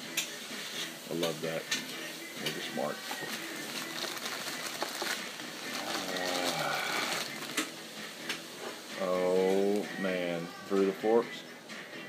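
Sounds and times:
plastic packaging crinkling: 2.9 - 7.7.

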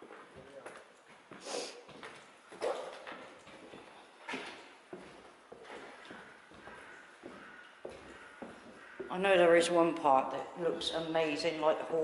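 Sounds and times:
footsteps on gritty floor: 0.0 - 9.2.

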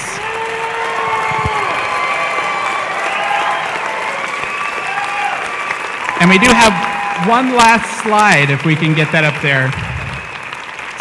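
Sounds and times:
audience applauding: 0.0 - 11.0
audience cheering: 0.0 - 11.0.

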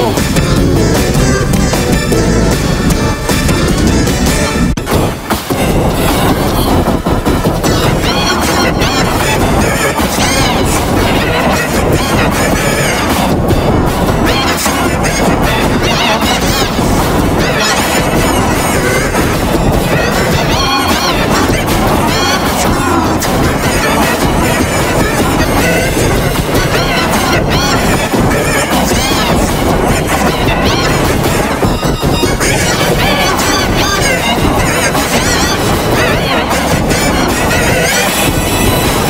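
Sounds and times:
distorted children's pop song: 0.0 - 39.0.

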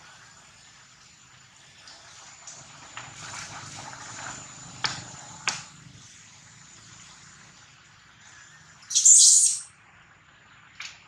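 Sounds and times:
monkey screaming: 8.9 - 9.7.

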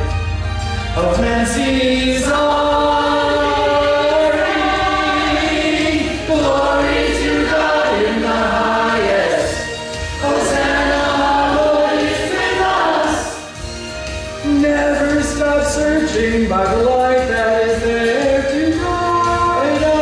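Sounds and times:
choir singing: 1.1 - 13.6.

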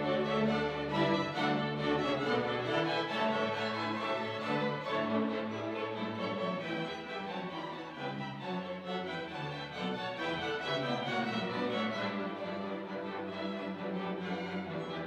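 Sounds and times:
orchestra bowed strings: 0.0 - 15.0.

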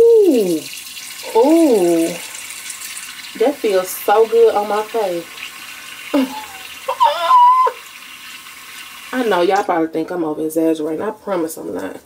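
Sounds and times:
woman exclaiming with pleasure: 6.2 - 7.8.

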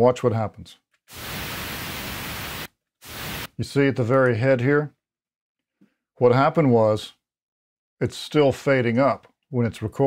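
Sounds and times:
pink noise hiss: 1.1 - 3.5.

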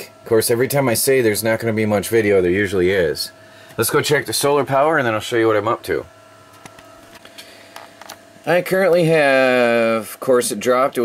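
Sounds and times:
faint electrical hum: 0.0 - 11.0
thin whine: 0.0 - 11.0.

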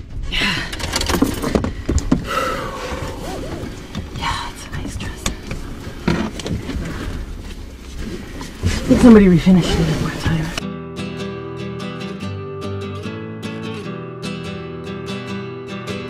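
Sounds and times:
low rumble inside truck cab: 0.0 - 10.6.

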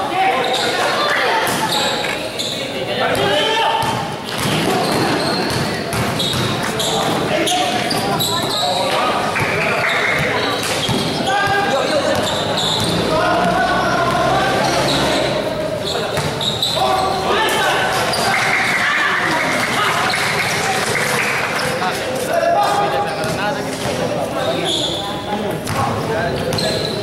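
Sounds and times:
people shouting and chatting: 0.0 - 27.0
basketball bouncing on court: 3.1 - 8.6, 9.4 - 14.3, 16.1 - 16.5, 25.6 - 26.8.

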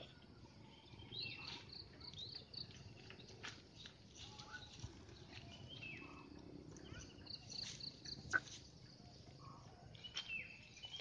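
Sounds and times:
faint birdsong: 0.0 - 11.0.

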